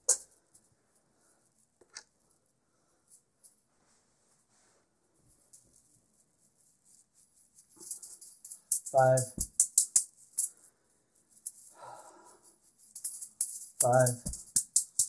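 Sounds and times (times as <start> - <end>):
juggling balls caught in hand: 13.8 - 15.0.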